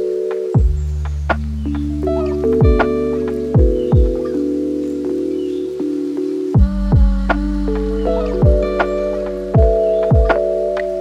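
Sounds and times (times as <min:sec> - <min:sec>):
held chord: 0:00.0 - 0:11.0
lo-fi hip-hop music: 0:00.0 - 0:11.0
low kick-drum thump: 0:00.6 - 0:00.8, 0:02.6 - 0:03.0, 0:03.6 - 0:04.2, 0:06.6 - 0:07.2, 0:08.4 - 0:09.0, 0:09.6 - 0:10.4.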